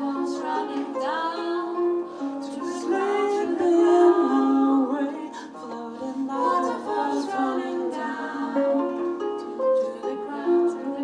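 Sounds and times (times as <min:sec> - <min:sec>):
women singing in close harmony: 0:00.0 - 0:11.0.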